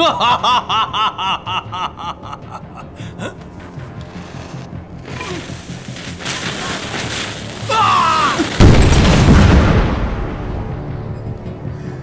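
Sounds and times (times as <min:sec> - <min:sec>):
man laughing triumphantly: 0:00.0 - 0:03.4.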